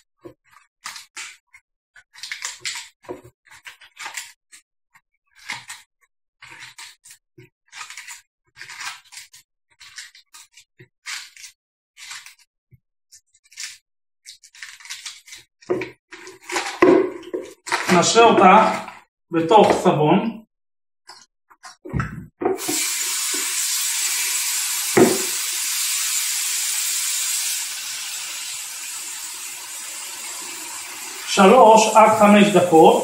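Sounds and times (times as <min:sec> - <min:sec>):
lettuce leaves snapping and tearing: 0:02.2 - 0:02.9, 0:14.6 - 0:15.4.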